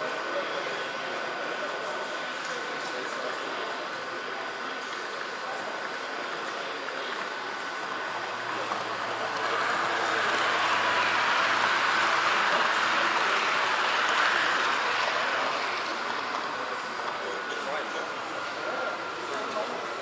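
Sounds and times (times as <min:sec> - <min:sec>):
model train running noise: 0:00.0 - 0:20.0
model train wheels rolling on rails: 0:00.0 - 0:20.0.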